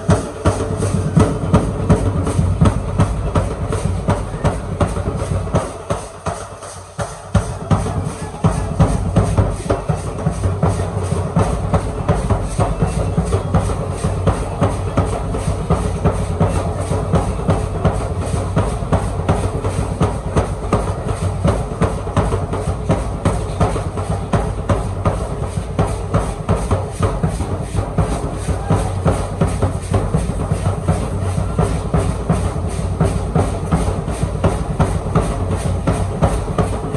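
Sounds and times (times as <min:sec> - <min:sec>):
large drum beating: 0:00.0 - 0:36.9.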